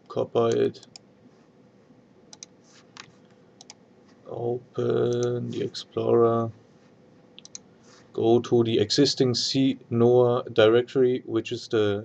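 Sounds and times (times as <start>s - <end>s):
faint computer mouse clicks: 2.3s - 3.8s, 7.4s - 7.7s.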